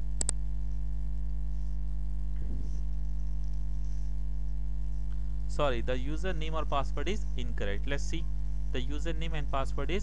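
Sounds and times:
electrical mains hum: 0:00.0 - 0:10.0.

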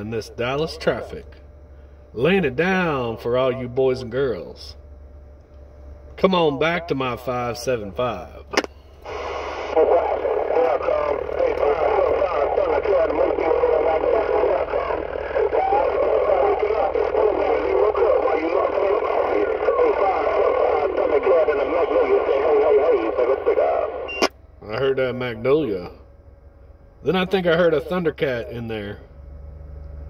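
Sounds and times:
garbled radio voices: 0:00.0 - 0:01.5, 0:02.1 - 0:04.8, 0:06.1 - 0:25.9, 0:27.0 - 0:29.0
radio hiss: 0:06.2 - 0:25.9
radio whistles: 0:08.5 - 0:24.4.

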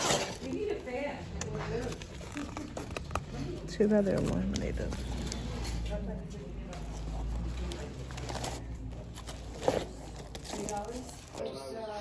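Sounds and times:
cardboard rustling: 0:01.7 - 0:11.4.

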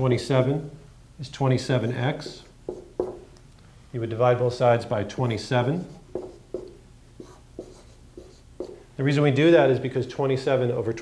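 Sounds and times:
marker writing on whiteboard: 0:02.2 - 0:03.3, 0:05.0 - 0:08.9.

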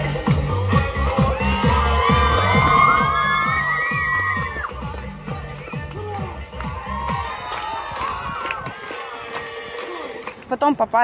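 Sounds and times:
electronic dance music with bass beat: 0:00.0 - 0:11.0
crowd cheering and whooping: 0:01.1 - 0:04.8, 0:05.6 - 0:09.0.

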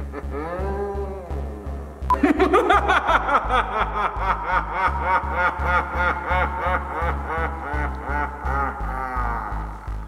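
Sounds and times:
man cackling laugh: 0:00.0 - 0:01.0, 0:02.1 - 0:09.8
music with pulsing bass: 0:00.0 - 0:10.0.

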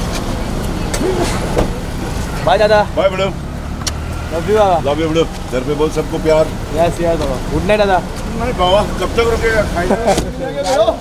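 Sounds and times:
car engine idling: 0:00.0 - 0:11.0
voices calling out: 0:00.0 - 0:11.0.

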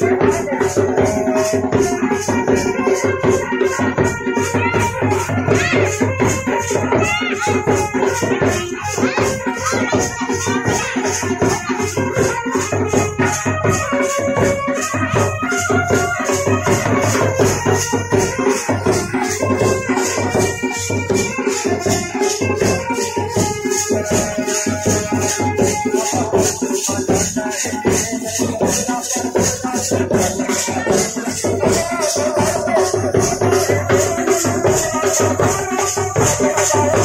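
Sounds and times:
drums: 0:00.0 - 0:37.0
fast rattling percussion beat: 0:00.0 - 0:37.0.

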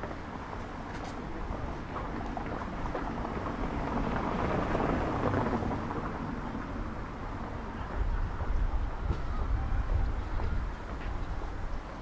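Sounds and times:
car tyres on cobblestones: 0:00.0 - 0:12.0.

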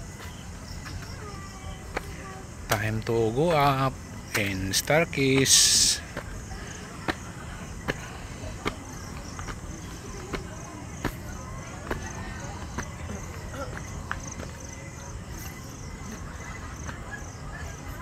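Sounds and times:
footsteps on stone steps: 0:00.0 - 0:18.0
insects chirping: 0:00.0 - 0:18.0.

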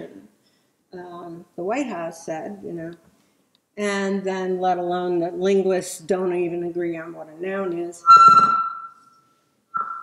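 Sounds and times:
microphone feedback squeal: 0:08.0 - 0:10.0.

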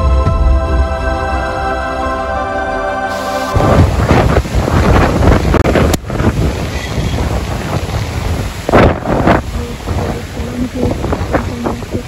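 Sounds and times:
wind buffeting microphone: 0:03.6 - 0:12.0.

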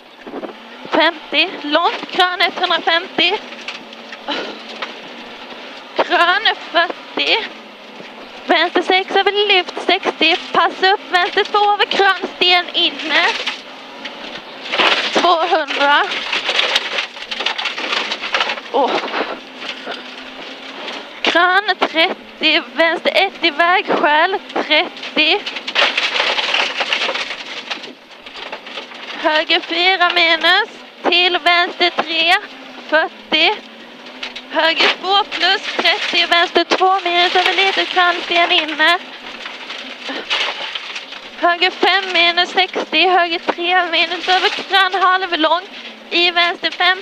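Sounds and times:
rally car on gravel road: 0:00.0 - 0:47.0.

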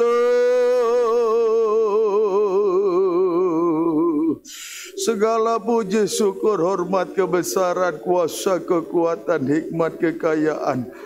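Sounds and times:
man singing long note: 0:00.0 - 0:04.4.

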